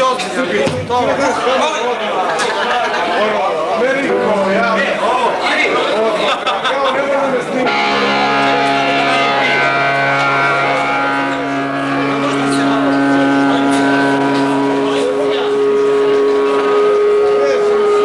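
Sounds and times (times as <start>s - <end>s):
electric guitars holding long notes: 3.1s - 18.0s.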